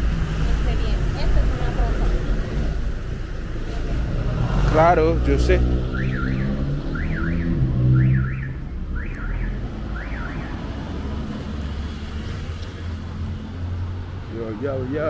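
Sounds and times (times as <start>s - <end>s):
vehicle engine passing: 0.0s - 15.0s.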